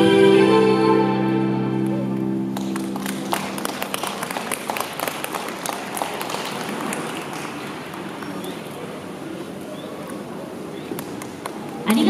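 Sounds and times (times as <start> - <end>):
audience applause: 2.5 - 9.2.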